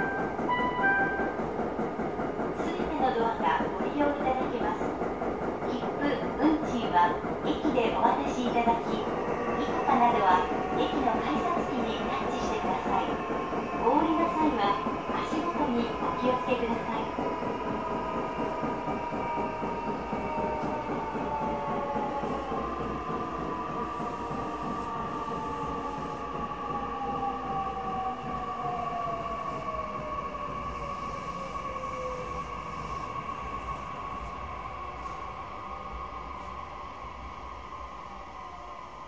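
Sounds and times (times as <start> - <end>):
train rolling rumble: 0.0 - 38.9.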